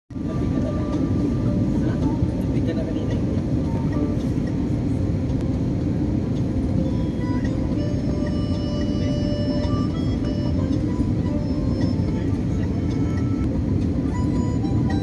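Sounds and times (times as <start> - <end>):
airliner cabin rumble: 0.1 - 15.0
music: 0.1 - 15.0.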